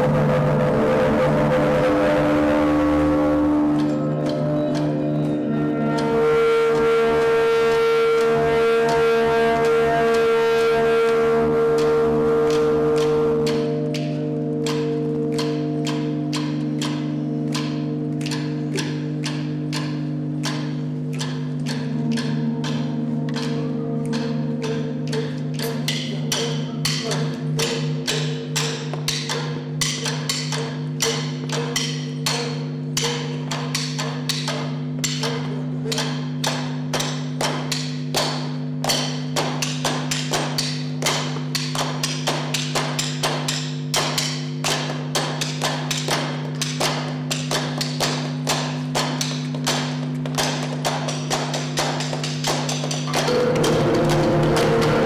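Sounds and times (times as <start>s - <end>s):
sustained band drone: 0.0s - 37.4s, 38.0s - 55.0s
sharp hand claps: 11.0s - 55.0s.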